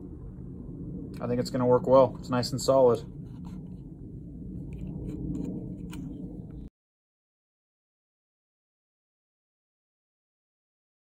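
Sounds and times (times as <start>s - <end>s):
low steady rumble: 0.0s - 6.7s.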